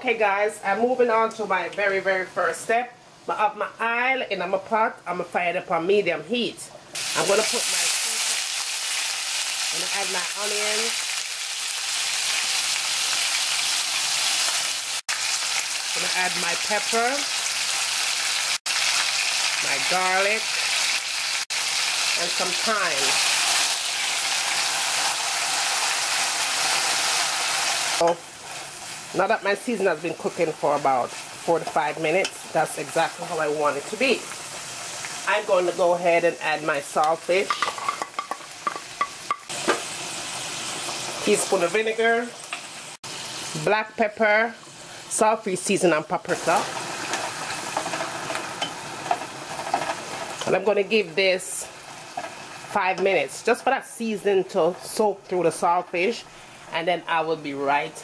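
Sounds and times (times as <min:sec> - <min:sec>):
vegetables sizzling in hot oil: 0:06.9 - 0:56.8.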